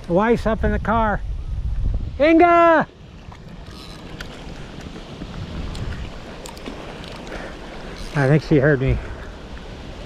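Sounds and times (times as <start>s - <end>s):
wind rumbling on microphone: 0.0s - 10.0s
waves lapping at shore: 2.3s - 10.0s.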